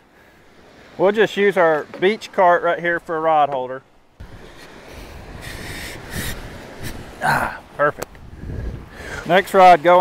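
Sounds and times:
surf washing on sand: 0:00.0 - 0:10.0
wind rumbling on microphone: 0:04.2 - 0:10.0
short hissing rushes: 0:04.3 - 0:07.2.

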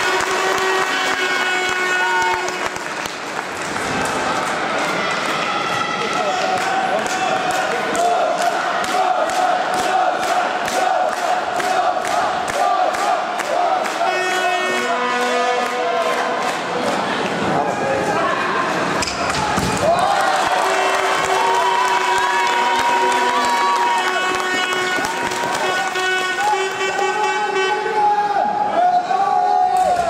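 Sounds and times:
crowd clapping in unison: 0:00.0 - 0:17.4, 0:19.8 - 0:27.3
arena crowd cheering: 0:00.0 - 0:30.0
crowd chanting: 0:07.5 - 0:17.5.

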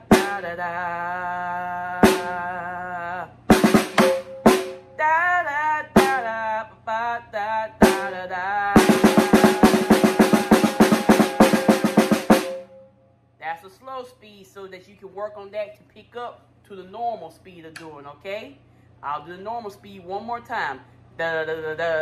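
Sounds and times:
person singing the rhythm: 0:00.0 - 0:12.6, 0:19.0 - 0:22.0
snare drum strokes: 0:03.5 - 0:04.9, 0:08.8 - 0:12.8.

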